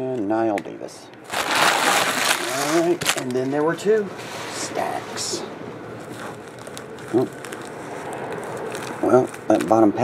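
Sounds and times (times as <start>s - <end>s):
foil packs crinkling: 1.2s - 3.8s, 6.0s - 10.0s.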